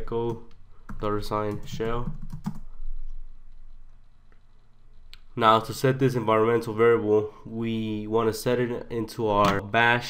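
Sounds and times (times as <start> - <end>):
typing on computer keyboard: 0.3 - 2.7.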